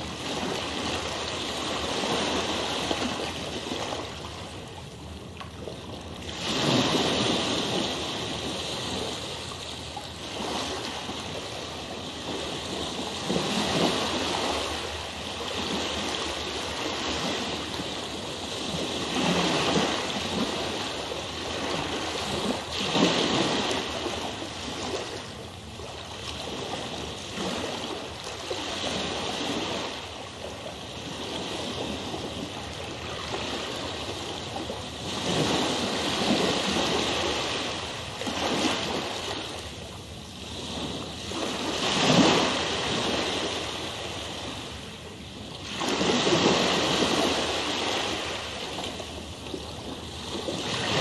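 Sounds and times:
ocean waves surging: 0.0s - 30.3s, 31.0s - 51.0s
flowing water: 0.0s - 51.0s.

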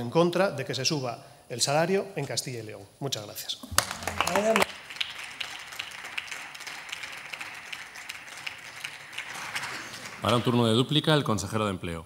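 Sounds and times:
group applauding: 3.7s - 11.0s.

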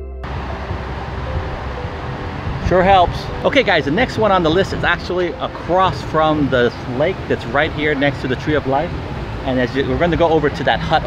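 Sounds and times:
background music: 0.0s - 11.0s
low rumble: 0.0s - 11.0s
outdoor rushing noise: 0.2s - 11.0s.

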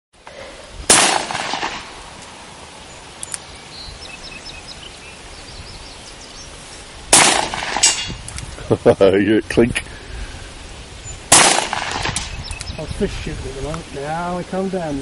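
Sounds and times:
handgun shots with echo: 0.9s - 1.9s, 7.2s - 8.1s, 11.3s - 12.3s
bullet clinking on metal target: 7.6s - 8.2s.

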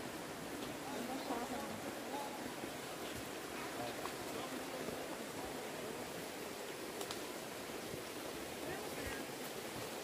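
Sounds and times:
creek rushing: 0.0s - 10.0s.

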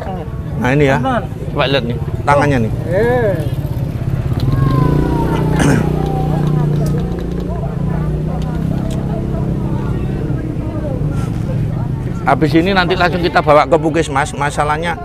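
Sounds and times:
engine running steadily: 0.0s - 13.3s
faint background voices: 0.0s - 15.0s.

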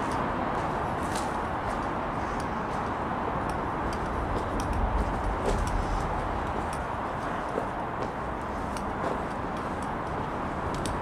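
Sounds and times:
footsteps on dirt: 0.0s - 11.0s
road traffic rumble overhead: 0.0s - 11.0s.

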